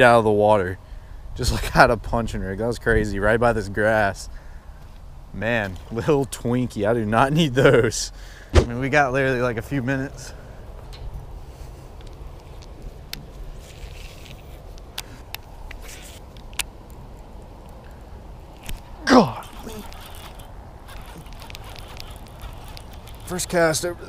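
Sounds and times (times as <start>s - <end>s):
faint clicks: 19.6s - 23.6s.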